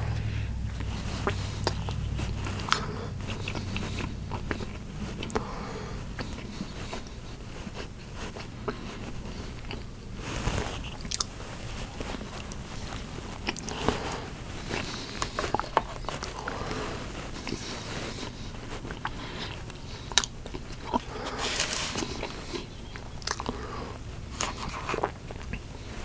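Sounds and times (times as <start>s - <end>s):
man chewing food: 0.0s - 26.0s.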